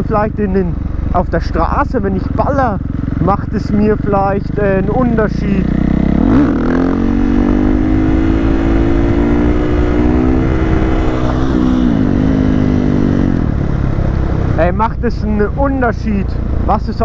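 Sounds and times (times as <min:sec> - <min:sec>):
motorcycle engine revving: 0:00.0 - 0:17.0.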